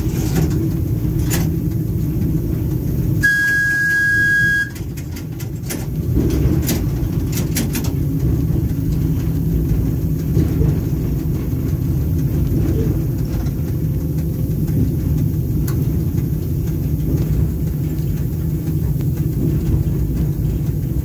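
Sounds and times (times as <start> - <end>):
electric train rumbling: 0.0 - 21.0.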